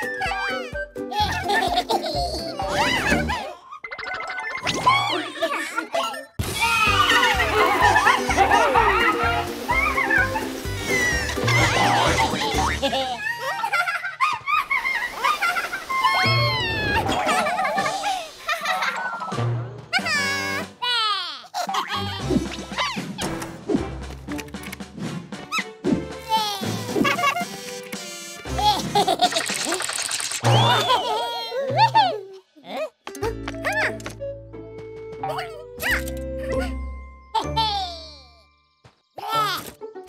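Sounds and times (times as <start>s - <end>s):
cartoon music: 0.0s - 13.2s, 19.0s - 20.8s, 25.5s - 32.3s, 33.1s - 34.3s, 35.2s - 38.5s
cartoon characters babbling and laughing: 0.0s - 23.2s, 25.5s - 27.6s, 28.5s - 34.1s, 35.2s - 38.5s, 39.2s - 39.8s
comic swooping sound effects: 29.4s - 31.3s.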